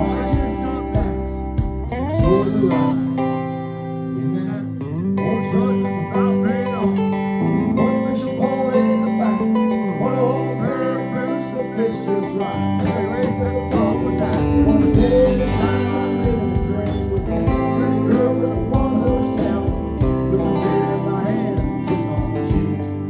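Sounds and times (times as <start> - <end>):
electric bass: 0.0 - 23.0
man singing: 0.0 - 23.0
strummed acoustic guitar: 0.0 - 23.0.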